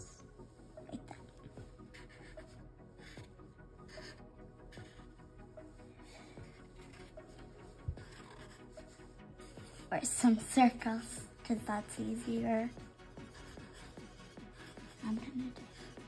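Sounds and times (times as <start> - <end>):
faint background music: 0.0 - 16.0
marker scratching on paper: 0.9 - 5.1, 6.0 - 16.0.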